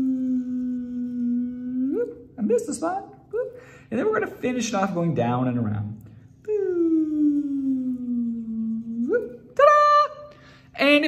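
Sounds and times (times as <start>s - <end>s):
man singing long ooo note: 0.0s - 2.3s.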